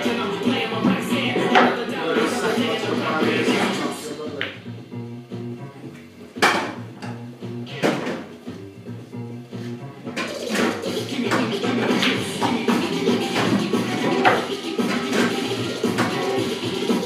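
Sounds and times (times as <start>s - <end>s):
pool balls clacking: 0.0s - 4.6s, 5.9s - 8.6s, 9.8s - 17.0s
song with steady bass line: 0.0s - 17.0s.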